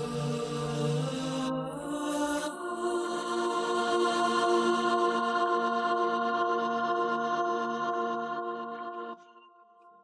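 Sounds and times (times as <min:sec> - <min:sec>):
sustained sung backing vocals: 0:00.0 - 0:09.2.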